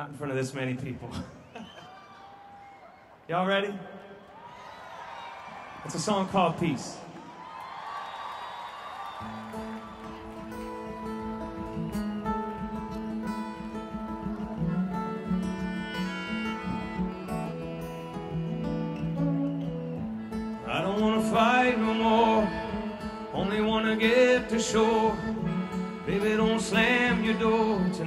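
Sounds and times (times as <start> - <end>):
strummed acoustic guitar: 9.2 - 28.0
held bass notes: 10.6 - 28.0.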